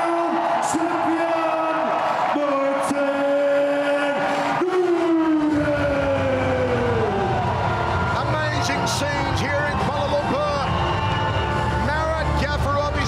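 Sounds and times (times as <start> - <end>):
man announcing over pa: 0.0 - 7.1
crowd noise: 0.0 - 13.0.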